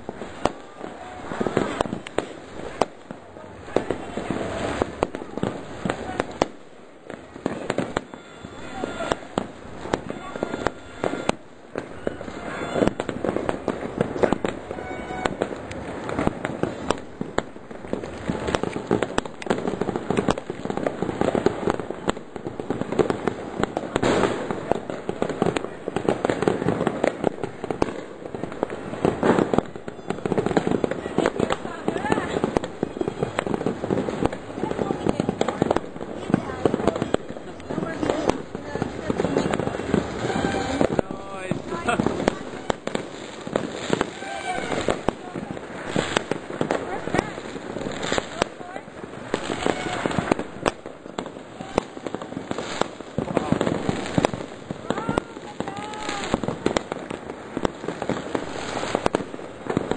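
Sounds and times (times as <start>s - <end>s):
fireworks bangs and pops: 0.0s - 59.9s.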